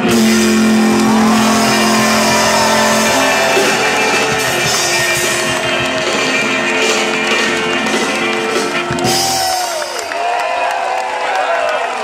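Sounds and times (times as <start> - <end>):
electric guitars ringing: 0.0 - 9.4
live country band holding a note: 0.0 - 9.9.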